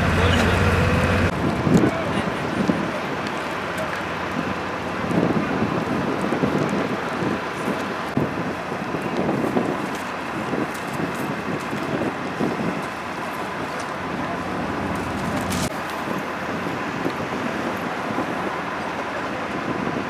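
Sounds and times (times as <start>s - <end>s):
open-air rumble: 0.0s - 20.0s
wind buffeting microphone: 0.0s - 20.0s.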